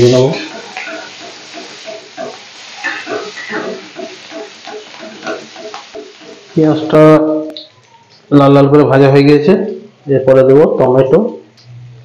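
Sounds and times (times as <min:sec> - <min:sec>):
spatula scraping wok: 0:00.0 - 0:06.6
onions sizzling in oil: 0:00.0 - 0:08.3.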